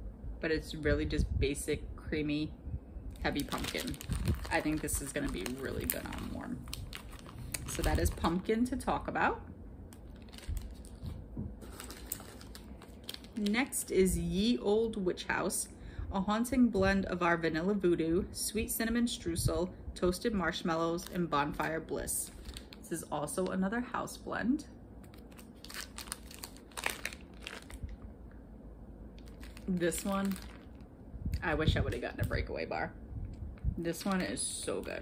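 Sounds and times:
plastic packaging crinkling: 3.1s - 8.7s, 9.9s - 13.8s, 21.0s - 23.6s, 25.0s - 28.1s, 29.1s - 30.9s, 33.8s - 35.0s.

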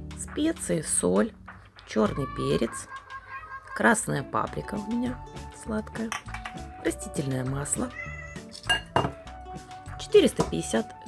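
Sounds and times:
background music: 0.0s - 11.0s
glass bottle clinking on stone: 8.5s - 9.2s.

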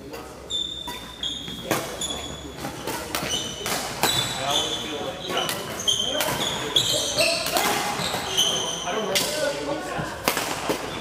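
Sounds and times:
players' voices: 0.0s - 11.0s
shoes squeaking on wooden floor: 0.4s - 9.1s
racket hitting shuttlecock: 2.6s - 4.2s, 10.2s - 10.9s.

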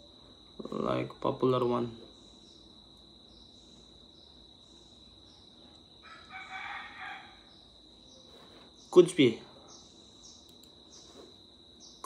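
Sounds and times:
rooster crowing faintly: 6.0s - 7.5s.

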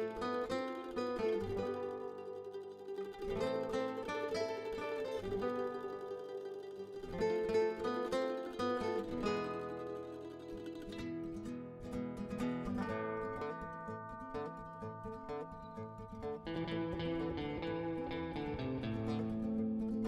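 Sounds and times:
plucked string instrument melody: 0.0s - 20.0s.

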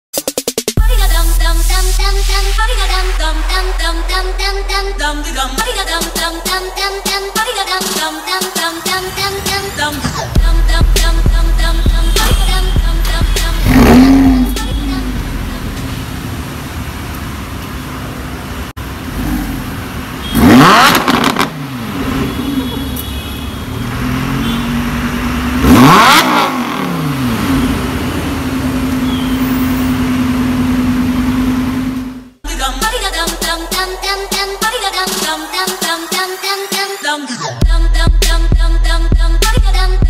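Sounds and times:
sports car engine idling and revving: 9.2s - 32.4s.

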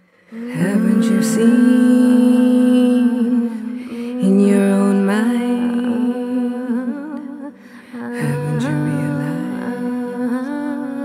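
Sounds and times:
person humming a slow melody: 0.2s - 11.0s.

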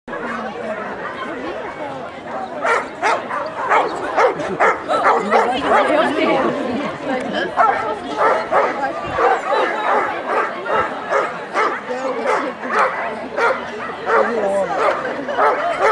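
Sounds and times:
crowd chatter: 0.1s - 15.9s
dog barking: 2.6s - 5.9s, 7.6s - 15.9s.

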